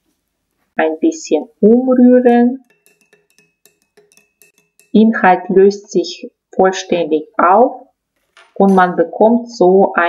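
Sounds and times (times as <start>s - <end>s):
spoon clinking in ceramic mug: 2.6s - 5.1s.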